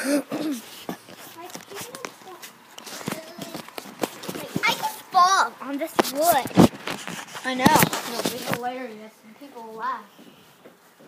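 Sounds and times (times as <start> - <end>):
children's voices: 1.2 - 6.7.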